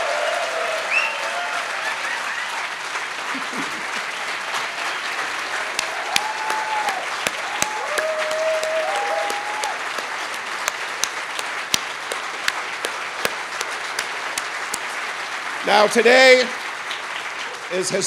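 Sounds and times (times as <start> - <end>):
audience applauding and cheering: 0.0 - 18.0
sharp close claps: 2.9 - 17.5
drawn-out whoops: 5.8 - 9.8.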